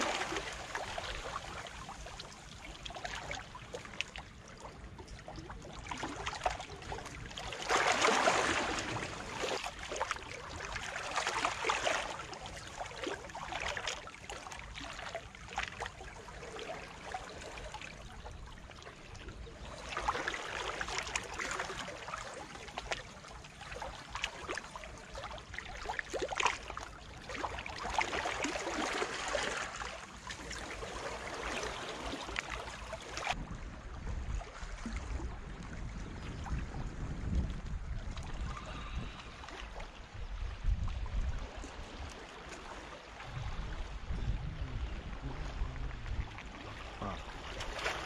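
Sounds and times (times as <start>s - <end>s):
waves lapping among boulders: 0.0s - 48.0s.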